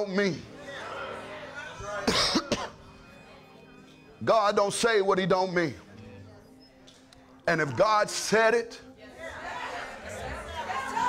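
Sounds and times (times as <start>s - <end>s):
soft music chords: 0.0s - 8.4s
man coughing: 2.0s - 2.8s.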